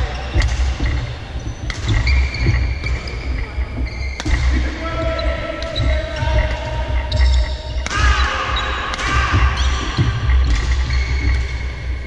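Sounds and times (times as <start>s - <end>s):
shoes squeaking on court floor: 0.0s - 12.0s
racket hitting shuttlecock: 0.4s - 1.0s, 1.6s - 3.0s, 4.1s - 4.6s, 7.8s - 11.6s.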